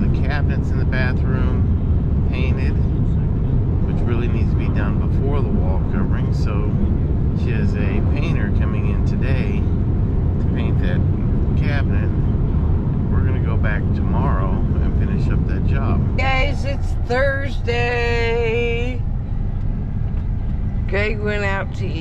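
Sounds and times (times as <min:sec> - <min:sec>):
man talking: 0:00.0 - 0:01.7, 0:02.3 - 0:02.9, 0:03.9 - 0:06.8, 0:07.4 - 0:09.7, 0:10.4 - 0:12.2, 0:13.1 - 0:16.1
road and engine rumble: 0:00.0 - 0:22.0.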